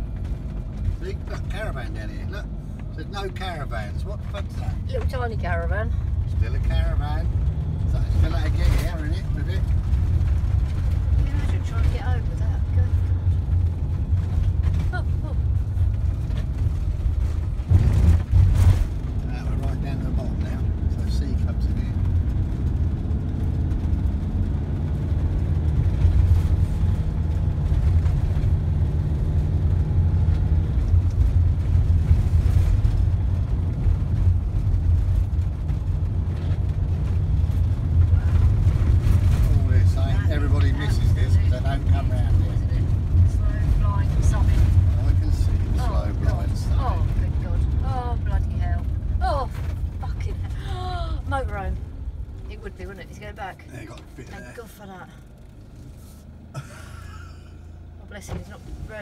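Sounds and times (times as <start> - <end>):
vehicle engine and tyres rumbling: 0.0 - 59.0.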